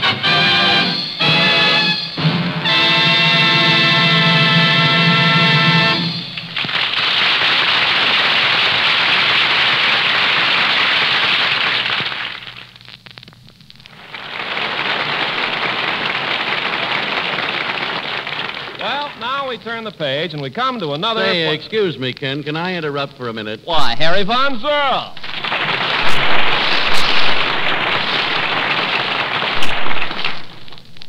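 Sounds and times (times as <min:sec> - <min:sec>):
orchestra holding chord: 0:00.0 - 0:06.4
audience applauding: 0:04.8 - 0:12.8, 0:13.9 - 0:19.5, 0:24.7 - 0:30.8.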